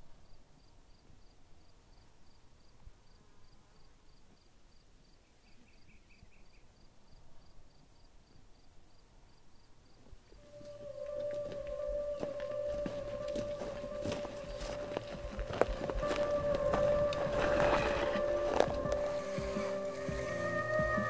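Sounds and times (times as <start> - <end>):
insect chirping: 0.0 - 21.0
music with held note: 10.4 - 21.0.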